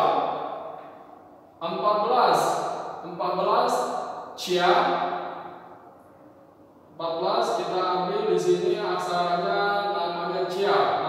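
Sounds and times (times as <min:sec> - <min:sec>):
man speaking: 0:00.0 - 0:00.2, 0:01.6 - 0:05.0, 0:07.0 - 0:11.0.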